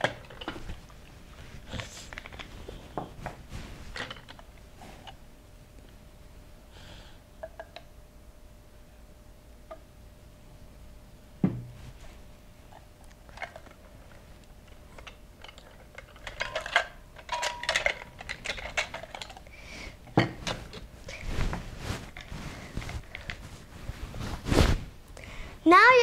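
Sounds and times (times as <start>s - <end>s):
knock on table: 11.4s - 11.8s
kitchenware clicking and clinking: 15.0s - 19.4s.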